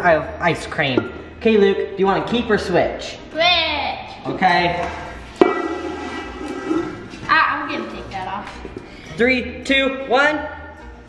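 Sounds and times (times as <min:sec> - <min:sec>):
metal cover knocking and ringing: 0:05.4 - 0:06.8.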